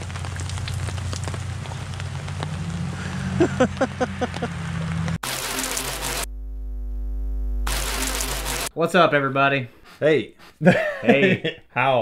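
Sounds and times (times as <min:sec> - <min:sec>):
rain falling on leaves: 0:00.0 - 0:06.3, 0:07.7 - 0:08.7.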